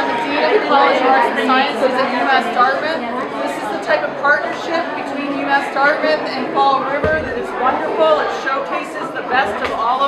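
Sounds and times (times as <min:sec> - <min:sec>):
background chatter: 0:00.0 - 0:10.0
woman talking: 0:00.0 - 0:10.0.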